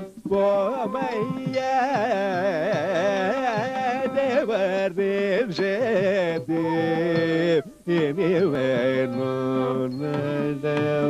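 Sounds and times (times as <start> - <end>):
man singing long notes: 0.0 - 11.0.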